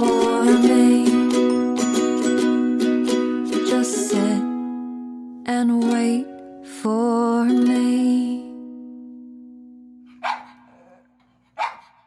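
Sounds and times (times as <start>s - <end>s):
dog barking: 10.1s - 12.0s.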